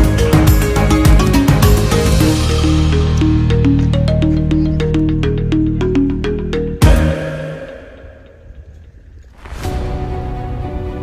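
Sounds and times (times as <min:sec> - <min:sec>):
soundtrack music: 0:00.0 - 0:11.0.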